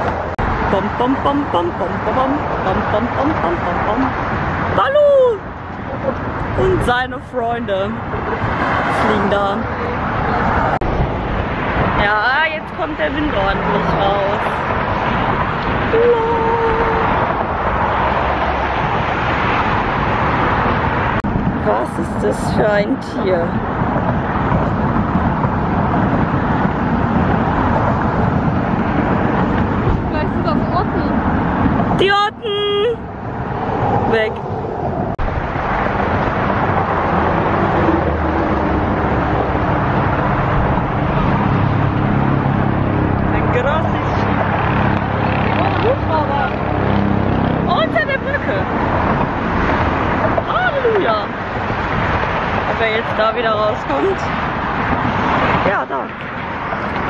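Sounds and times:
road traffic passing: 0.0s - 57.0s
wind on microphone: 0.0s - 57.0s.

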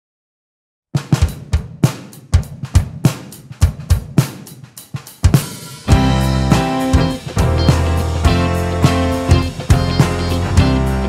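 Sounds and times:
drum kit groove: 1.0s - 11.0s.

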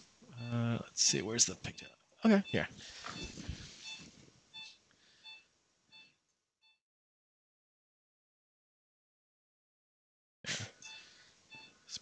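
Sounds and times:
short electronic beeps: 2.3s - 6.8s.

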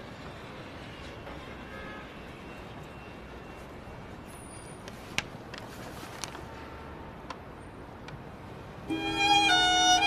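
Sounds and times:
low street background noise: 0.0s - 10.0s
string music: 8.8s - 10.0s.

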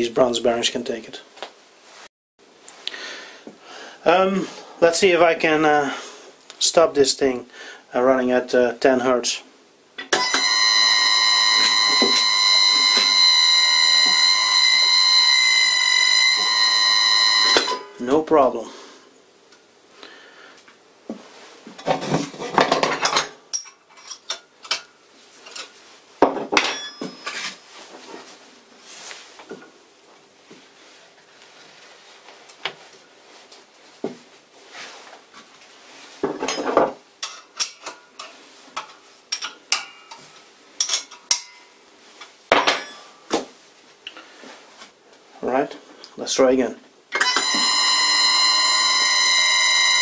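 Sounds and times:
faint steady hum: 2.6s - 21.8s.

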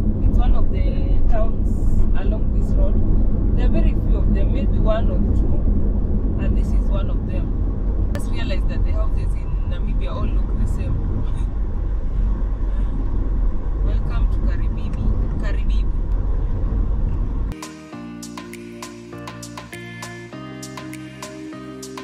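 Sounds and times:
car road and engine rumble: 0.0s - 17.6s.

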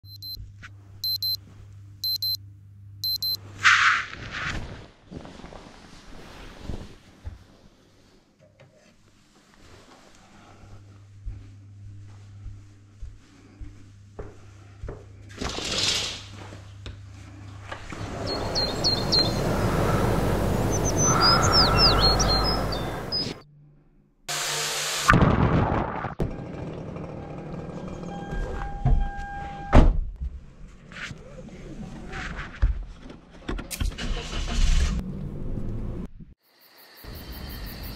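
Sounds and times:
digital alarm clock beeping: 0.1s - 0.4s, 1.0s - 1.4s, 2.0s - 2.4s, 3.0s - 3.4s
songbirds chirping: 17.9s - 23.4s
wind rushing: 18.0s - 23.4s.

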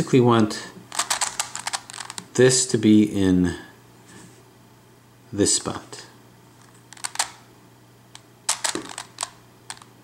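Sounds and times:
plastic puzzle clicking: 0.9s - 2.3s, 6.9s - 7.4s, 8.5s - 9.9s.

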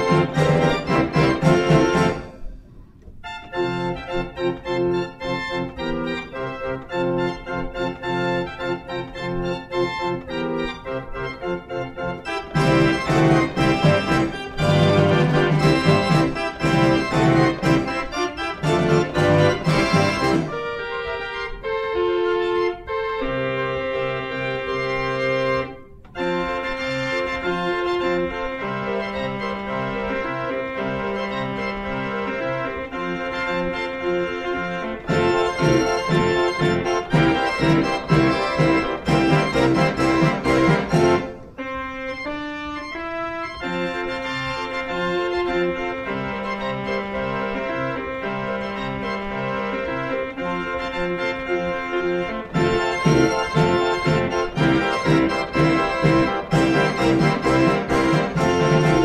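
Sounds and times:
fairground organ playing march: 0.0s - 59.0s.

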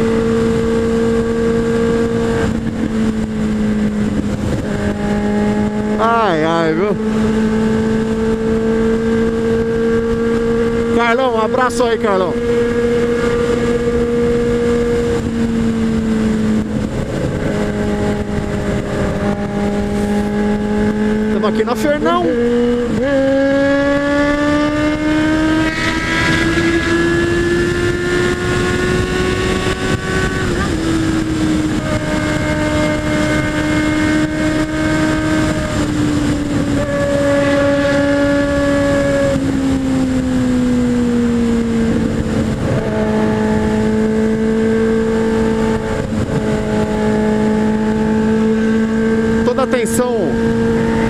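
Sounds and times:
motorcycle engine cruising: 0.0s - 51.0s
wind rush: 0.0s - 51.0s.

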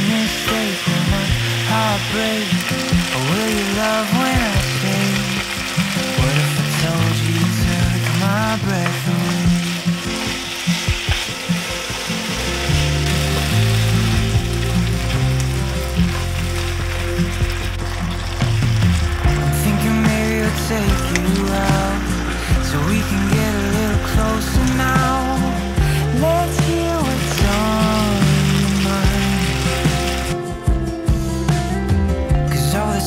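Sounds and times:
vegetables sizzling in frying pan: 0.0s - 30.4s
background music: 0.0s - 33.0s.

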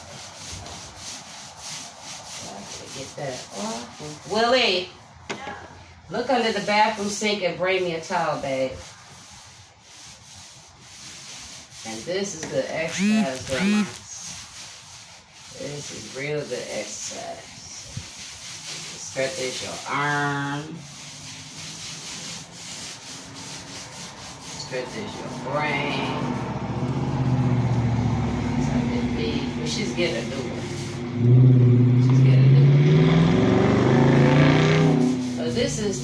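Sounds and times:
paint roller rubbing on wall: 0.0s - 5.0s, 6.1s - 36.0s
low motor hum: 12.9s - 14.0s.

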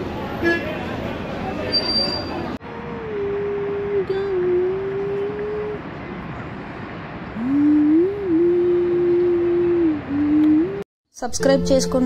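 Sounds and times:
city noise hiss: 0.0s - 10.8s.

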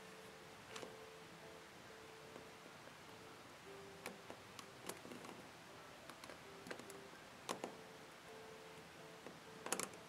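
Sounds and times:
metal hook clicking on plastic pegs: 9.6s - 10.0s.

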